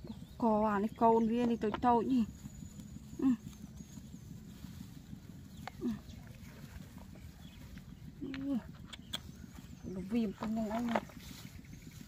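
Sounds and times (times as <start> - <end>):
dry grass rustling: 0.0 - 12.0.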